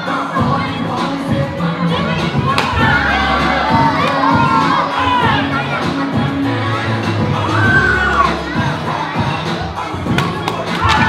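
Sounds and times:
audience cheering and shouting: 0.0 - 11.0.

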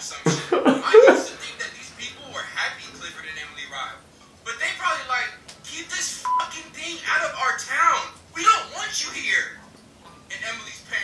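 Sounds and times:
short steady beep: 6.2 - 6.5.

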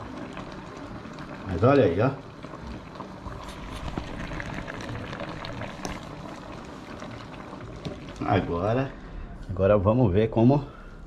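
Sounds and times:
stew bubbling in a pot: 0.0 - 10.8.

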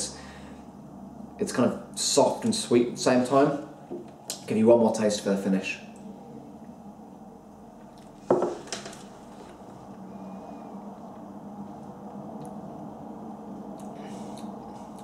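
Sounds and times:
faint room hum: 0.0 - 15.0.

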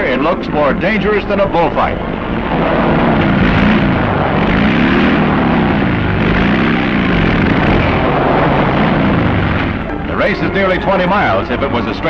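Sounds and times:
dense steady rush of noise: 0.0 - 12.0
motorcycle engines revving: 0.0 - 12.0.

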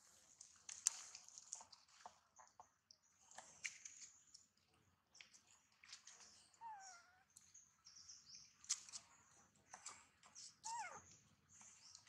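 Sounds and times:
birds chirping: 6.2 - 12.0.

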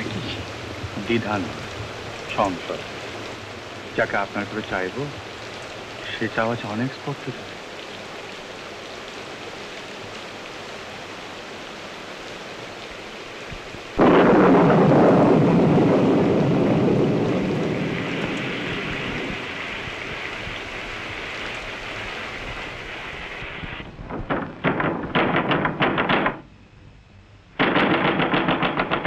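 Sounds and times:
thunderclap rumbling: 0.0 - 5.3, 14.0 - 26.5, 27.5 - 29.0
steady rain: 0.0 - 29.0.

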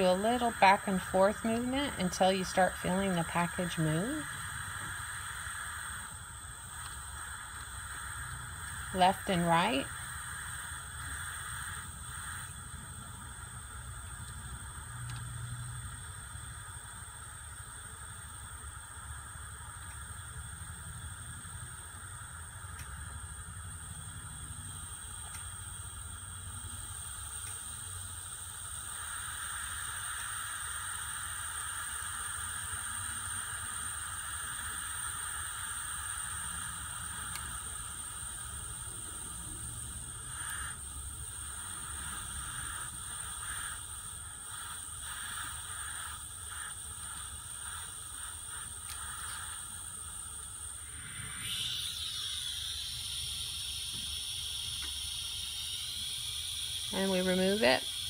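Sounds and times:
hot air blowing hiss: 0.0 - 58.0.

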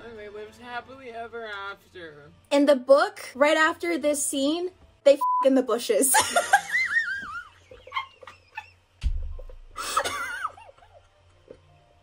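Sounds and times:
high-pitched laughter: 6.2 - 8.8, 9.8 - 11.1.

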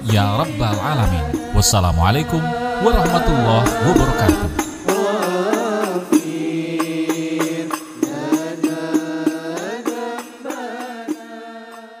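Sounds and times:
background music with regular beat: 0.0 - 11.9.

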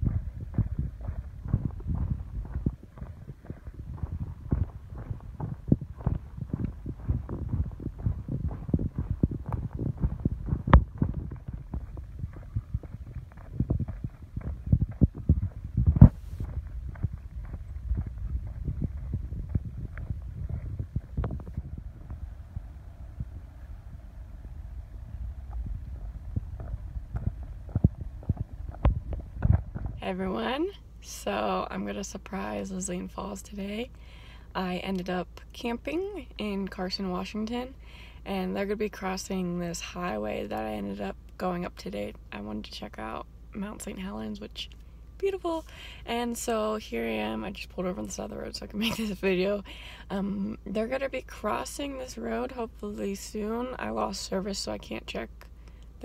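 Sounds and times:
footsteps on a dirt trail: 0.0 - 23.3, 25.0 - 30.4.

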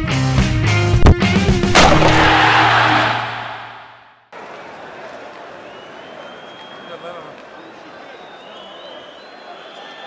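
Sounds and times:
faint stadium background noise: 2.9 - 10.0.

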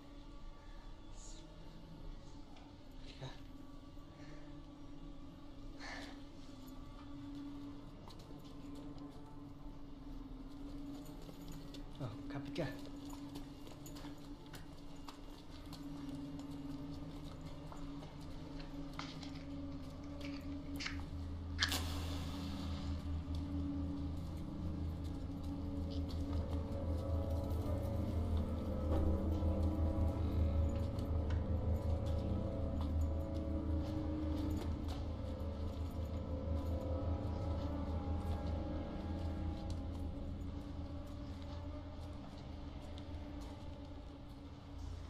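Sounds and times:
low suspense drone: 0.0 - 45.0.

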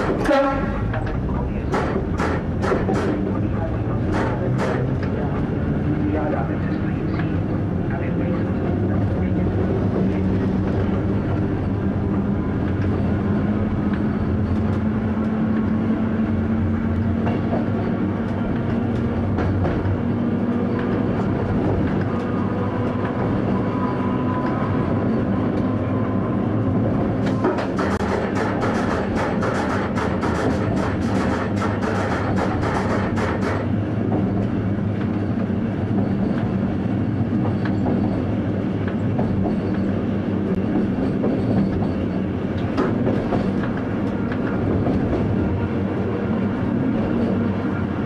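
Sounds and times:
train running hum: 0.0 - 48.0
wheels clicking over rail joints: 27.2 - 35.3.

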